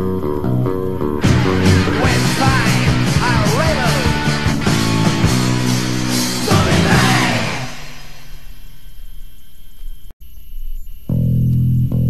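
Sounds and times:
distorted guitar chord ringing: 0:00.0 - 0:08.7
low amplifier hum: 0:00.0 - 0:12.0.

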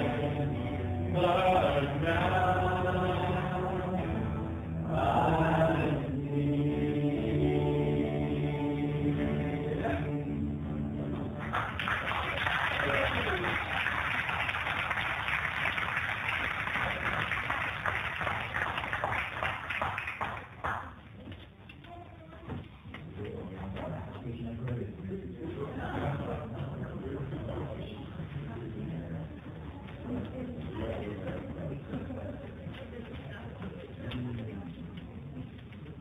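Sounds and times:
person singing: 0:00.0 - 0:10.9
electric keyboard accompaniment: 0:00.0 - 0:12.0
audience applauding: 0:11.4 - 0:21.0.

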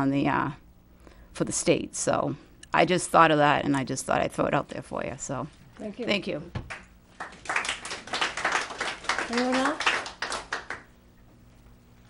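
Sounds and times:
handclaps: 0:06.6 - 0:10.9.

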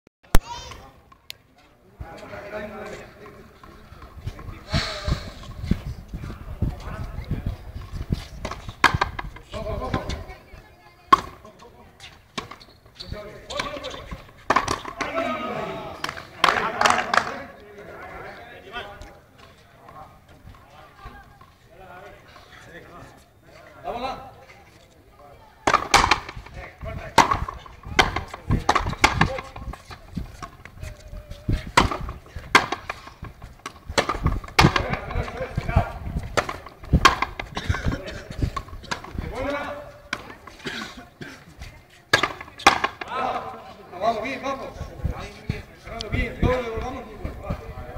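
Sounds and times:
ball knocking off rackets and wall: 0:13.5 - 0:15.2, 0:25.6 - 0:30.7, 0:31.6 - 0:39.3, 0:42.1 - 0:43.1.

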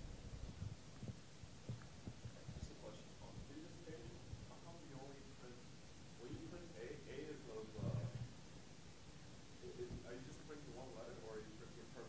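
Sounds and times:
soft low thumps: 0:00.0 - 0:04.8, 0:07.6 - 0:08.3.

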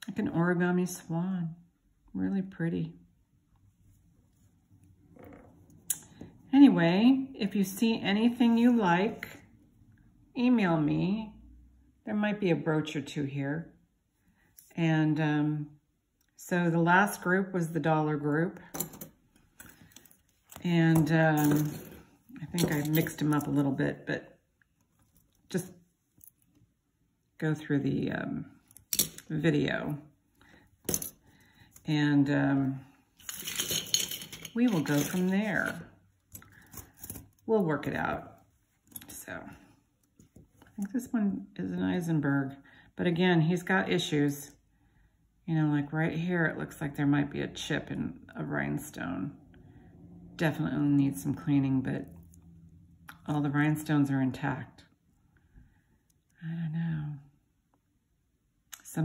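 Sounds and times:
metal brooch clinking: 0:18.7 - 0:23.7, 0:30.8 - 0:31.8, 0:33.2 - 0:37.5
faint handling sounds: 0:18.7 - 0:23.8, 0:33.0 - 0:40.8.

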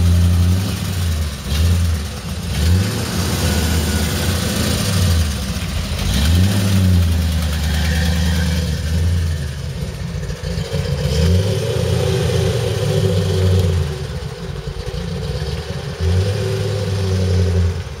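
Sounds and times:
car engine revving: 0:00.0 - 0:18.0.

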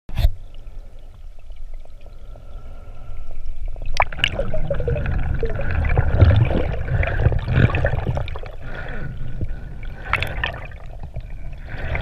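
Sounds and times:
underwater rush of moving water: 0:00.6 - 0:12.0.

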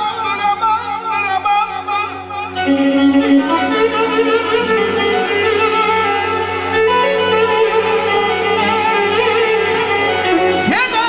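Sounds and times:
electronic keyboard accompaniment: 0:00.0 - 0:11.0.

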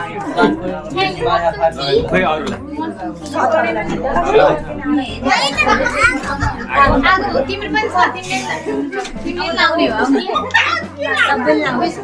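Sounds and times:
adult chatter: 0:00.0 - 0:12.0
young children talking and calling: 0:00.0 - 0:12.0.

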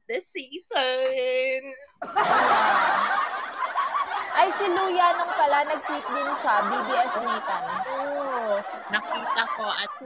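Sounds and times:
people laughing and giggling: 0:02.0 - 0:10.0.

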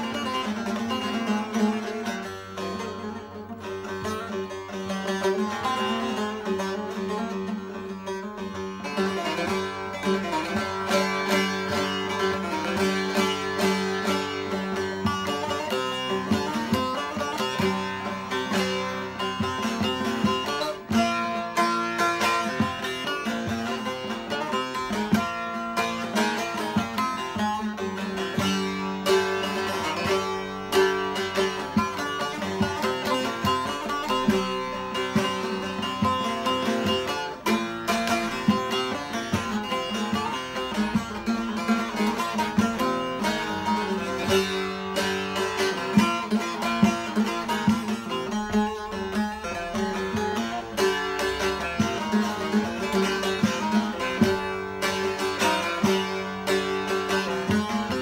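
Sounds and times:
long-neck lute played with plectrum: 0:00.0 - 0:58.0
open strings droning: 0:00.0 - 0:58.0.

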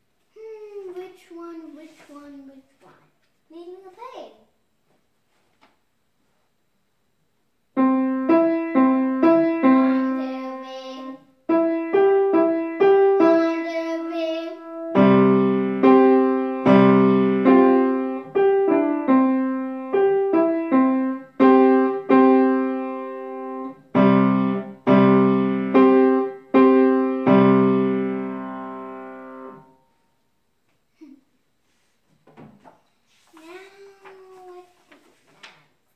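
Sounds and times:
grand piano melody: 0:07.8 - 0:29.8.

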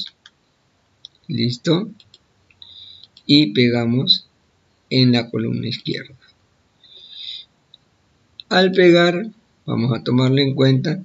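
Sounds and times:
faint high-pitched hiss: 0:00.0 - 0:11.0
computer mouse click: 0:02.0 - 0:03.3.

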